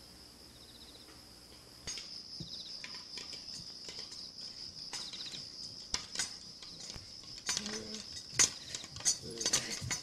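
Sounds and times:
high-pitched insect buzz: 0.0 - 8.4.

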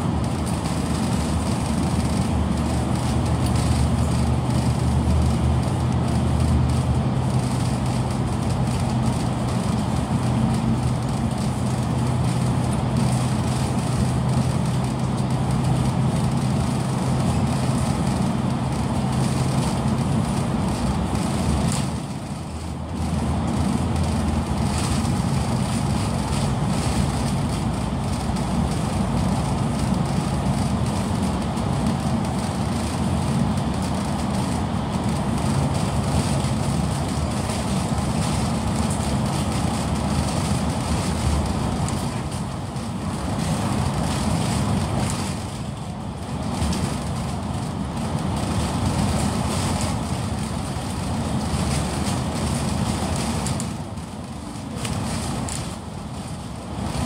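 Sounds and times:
bus engine drone: 0.0 - 57.0
road and tyre noise: 0.0 - 57.0.

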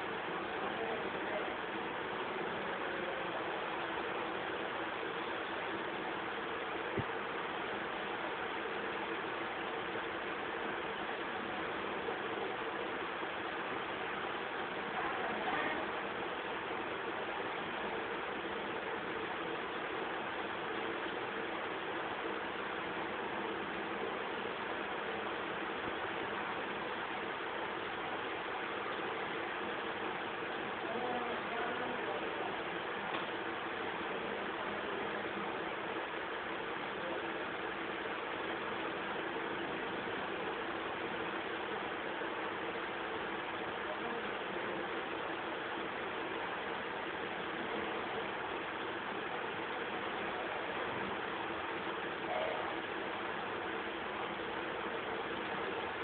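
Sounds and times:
static hiss: 0.0 - 56.0.

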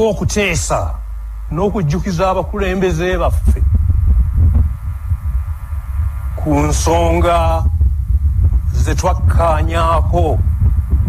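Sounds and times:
person speaking: 0.0 - 3.8
deep throbbing hum: 0.0 - 11.0.

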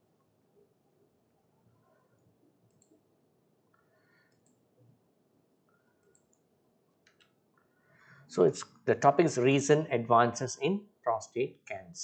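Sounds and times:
computer mouse clicks: 2.1 - 3.0, 3.7 - 4.6, 5.7 - 7.4.

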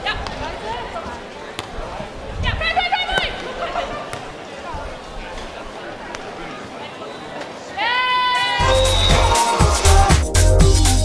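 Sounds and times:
faint chatter of voices: 0.0 - 8.6.

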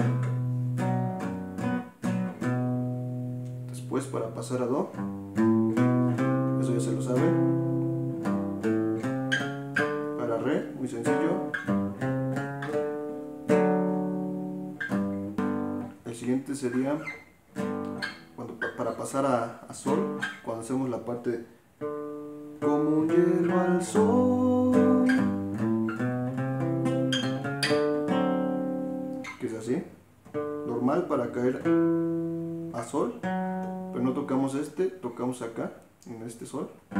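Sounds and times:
acoustic guitar picking: 0.0 - 20.8, 21.8 - 29.6, 30.2 - 34.6
person speaking: 3.6 - 5.0, 6.6 - 7.6, 10.0 - 11.6, 16.0 - 17.2, 17.9 - 21.6, 22.6 - 25.4, 29.2 - 30.0, 30.6 - 31.8, 32.6 - 33.3, 33.9 - 36.9.

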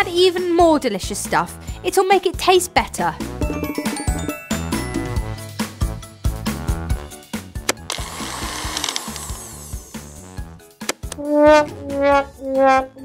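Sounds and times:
background music: 0.0 - 13.0
toy blender whirring: 7.8 - 10.1
comic descending brass wah-wah: 11.2 - 13.0.

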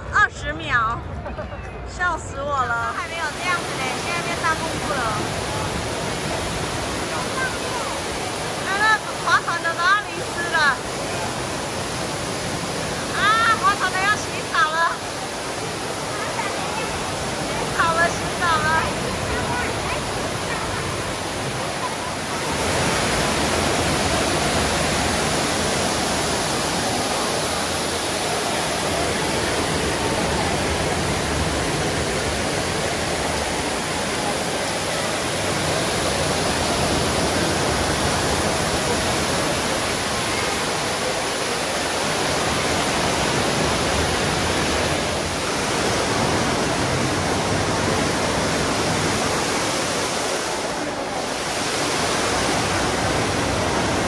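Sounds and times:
water falling into pool: 2.9 - 54.0.

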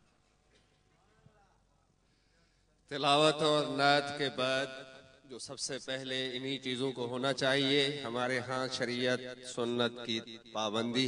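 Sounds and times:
man chanting through a microphone: 2.9 - 11.0.

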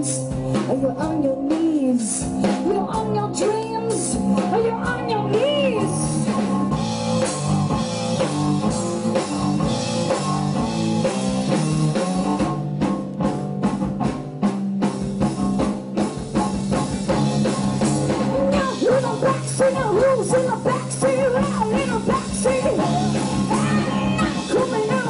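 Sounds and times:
drum kit strokes: 0.0 - 25.0
wavering voice singing: 18.6 - 25.0.

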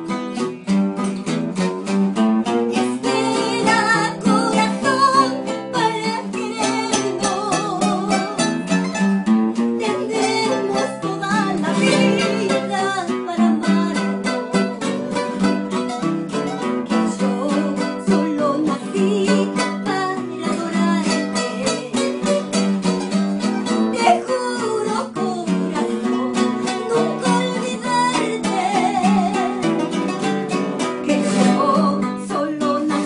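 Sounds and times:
acoustic guitars plucked and strummed: 0.0 - 33.0
woman singing with vibrato: 2.5 - 8.8, 9.6 - 15.7, 16.8 - 22.6, 23.7 - 30.2, 31.0 - 33.0.

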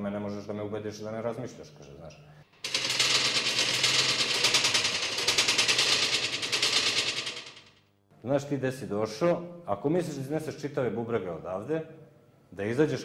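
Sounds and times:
fast rattle of sharp hits: 2.6 - 7.9.

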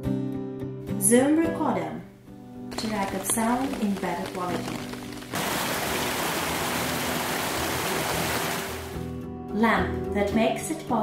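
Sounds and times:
rain falling: 2.7 - 9.1.

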